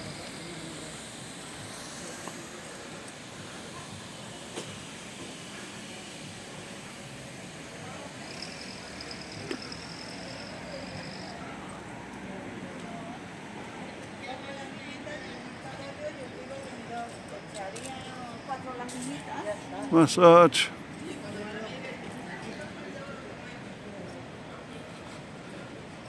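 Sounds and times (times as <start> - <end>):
thin high hiss: 0.0 - 11.8
faint distant voices: 0.0 - 26.0
traffic: 0.0 - 26.0.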